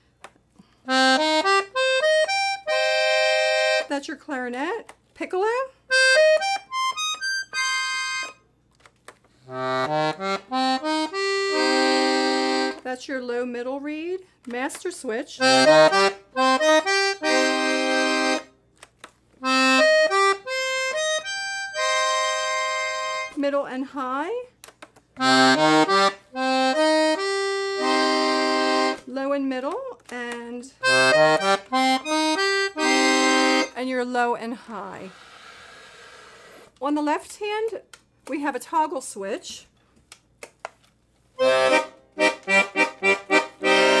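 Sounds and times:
accordion notes: 0.9s - 4.0s, 5.9s - 8.5s, 9.4s - 12.9s, 15.4s - 18.6s, 19.4s - 23.5s, 25.2s - 29.1s, 30.8s - 33.8s, 41.4s - 44.0s.

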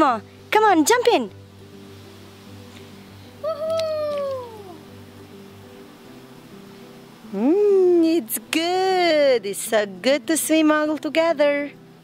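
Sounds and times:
background music with steady tones: 0.0s - 12.0s
squeaky high-pitched falling call: 3.4s - 4.8s.

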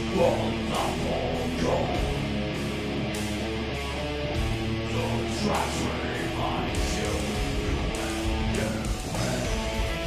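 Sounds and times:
metal band with distorted guitars: 0.0s - 10.0s.

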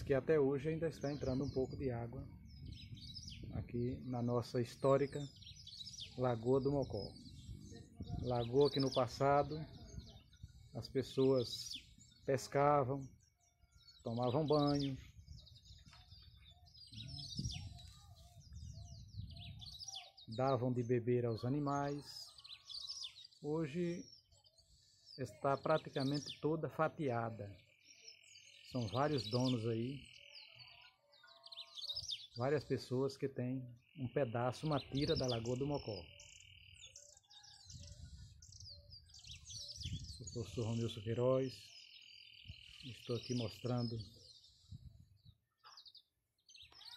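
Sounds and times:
small birds chirping: 0.0s - 46.9s.

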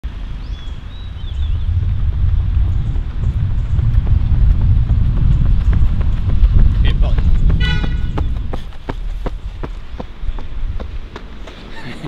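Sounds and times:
loud low rumble: 0.8s - 8.8s
footfalls on asphalt: 1.8s - 11.7s.

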